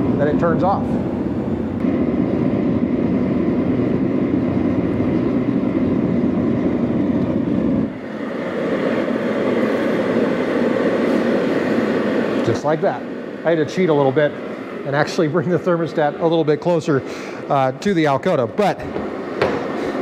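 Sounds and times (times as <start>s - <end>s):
fan blowing: 0.0s - 20.0s
heater burner deep rumble: 0.0s - 20.0s.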